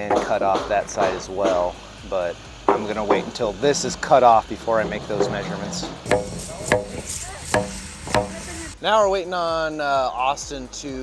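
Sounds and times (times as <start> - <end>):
hammer striking wooden beam: 6.1 - 8.6.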